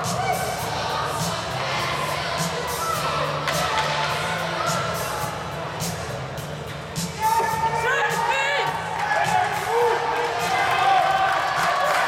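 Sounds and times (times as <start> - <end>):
music over arena sound system: 0.0 - 12.0.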